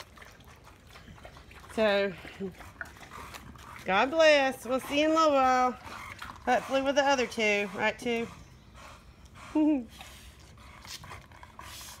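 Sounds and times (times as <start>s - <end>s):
dog panting: 0.2s - 12.0s.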